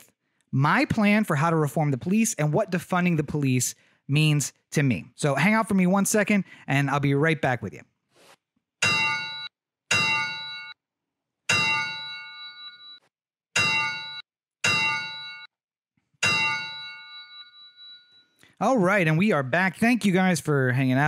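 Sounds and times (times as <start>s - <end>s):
sharp metallic clangs: 8.8s - 10.8s, 11.5s - 12.8s, 13.6s - 15.5s, 16.2s - 18.1s.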